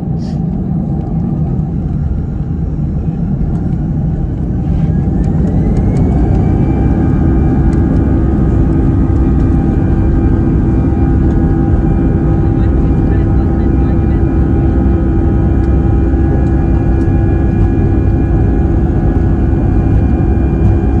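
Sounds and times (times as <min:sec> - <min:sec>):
heavy engine rumble: 0:00.0 - 0:21.0
jet engine whine: 0:00.0 - 0:21.0.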